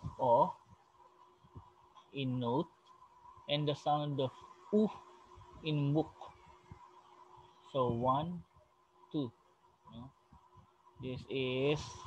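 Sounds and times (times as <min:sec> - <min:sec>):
man speaking: 0:00.0 - 0:00.6, 0:02.2 - 0:02.7, 0:03.5 - 0:05.0, 0:05.6 - 0:06.3, 0:07.8 - 0:08.4, 0:11.0 - 0:12.0
faint steady background hum: 0:00.0 - 0:12.0.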